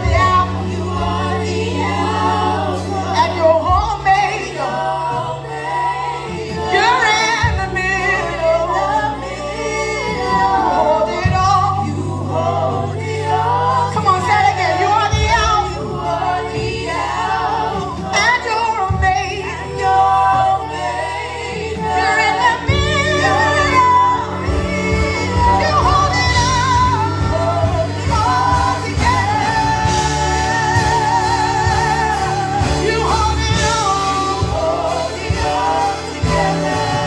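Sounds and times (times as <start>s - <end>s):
group singing gospel song: 0.0s - 37.0s
live band accompaniment: 0.0s - 37.0s.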